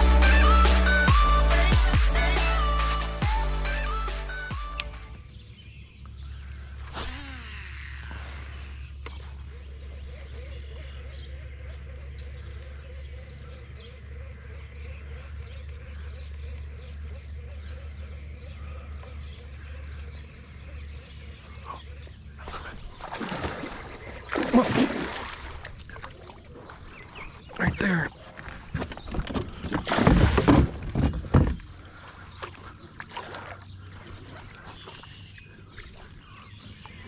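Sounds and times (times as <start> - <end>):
birds chirping: 0.0 - 37.0.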